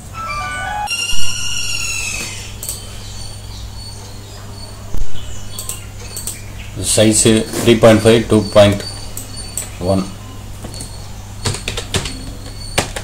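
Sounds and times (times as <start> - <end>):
electronic jingle: 0.0 - 2.5.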